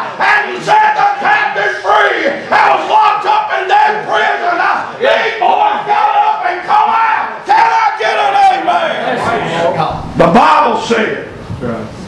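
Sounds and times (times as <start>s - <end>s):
man preaching in chanted shout: 0.0s - 11.3s.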